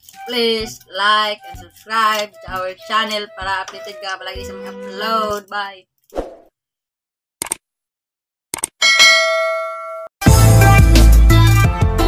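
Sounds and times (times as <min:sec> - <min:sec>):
bright bell ding: 0:08.8 - 0:10.1.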